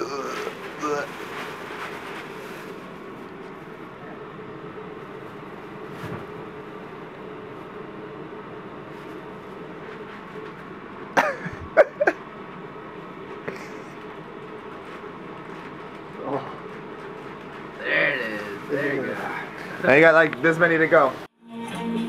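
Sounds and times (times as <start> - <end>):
faint hum: 0.0 - 22.0
person coughing: 11.2 - 12.2.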